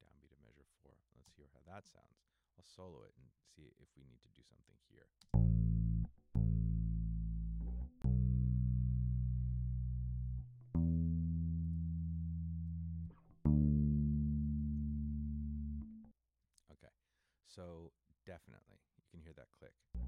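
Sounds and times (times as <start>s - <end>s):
low bass guitar notes: 5.3s - 16.1s.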